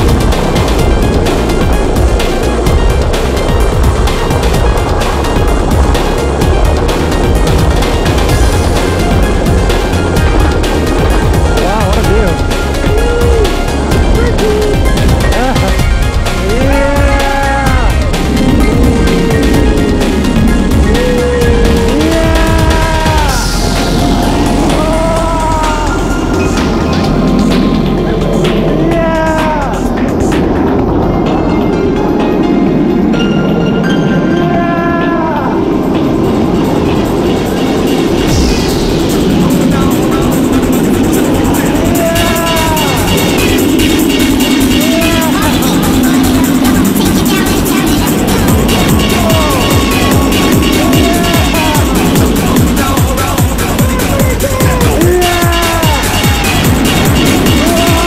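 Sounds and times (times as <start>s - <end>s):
electronic music with beat: 0.0s - 58.0s.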